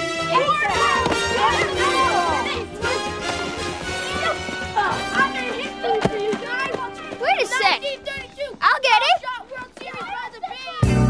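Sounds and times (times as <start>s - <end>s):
children shouting excitedly: 0.0s - 10.9s.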